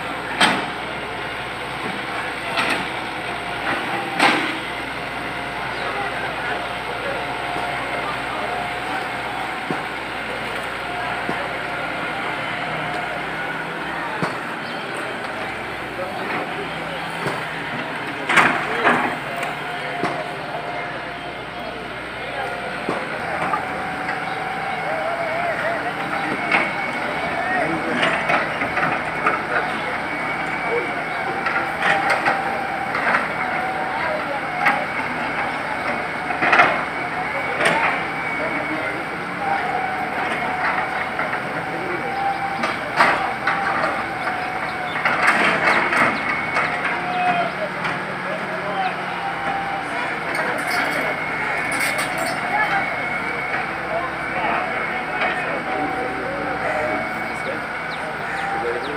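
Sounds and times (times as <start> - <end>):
background voices: 0.0 - 58.9
machinery drone: 0.0 - 58.9.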